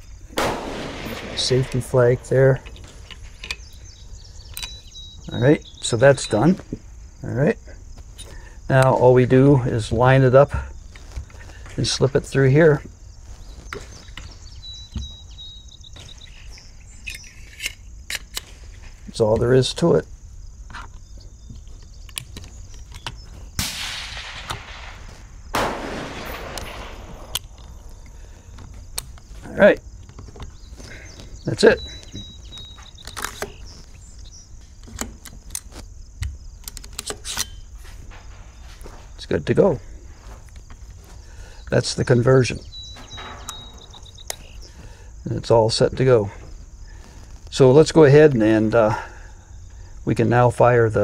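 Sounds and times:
light metal clicks: 0:00.4 - 0:05.0, 0:25.6 - 0:39.6, 0:41.9 - 0:44.7
faint high steady chirp: 0:01.8 - 0:06.6, 0:13.2 - 0:18.0, 0:30.2 - 0:35.6, 0:41.2 - 0:45.6.

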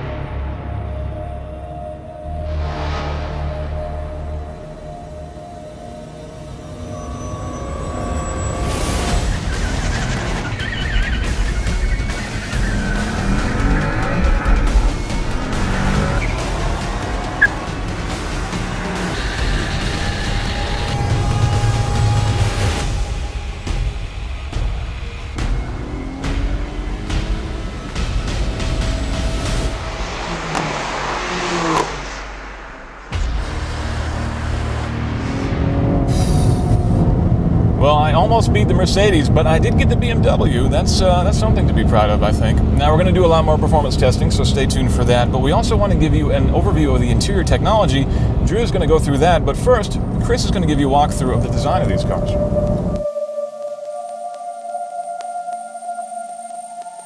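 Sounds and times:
loud music soundtrack: 0:00.0 - 0:38.2
car engines accelerating hard: 0:02.4 - 0:53.1.

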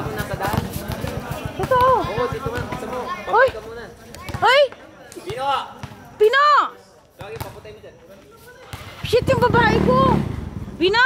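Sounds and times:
basketball bouncing on hard court: 0:00.2 - 0:03.6, 0:05.3 - 0:06.0, 0:07.2 - 0:07.6.

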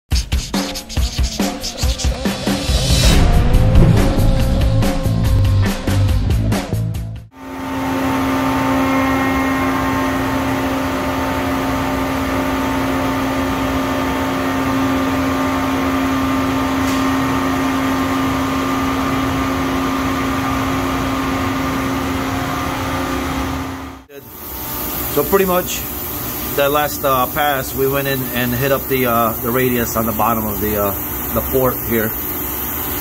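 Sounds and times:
short music sting: 0:01.8 - 0:07.2
milling machine running: 0:07.4 - 0:33.0.

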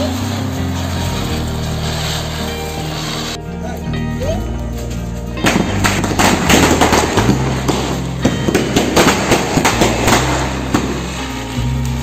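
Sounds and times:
background music with bass: 0:00.0 - 0:12.0
firework crackling: 0:00.0 - 0:12.0.

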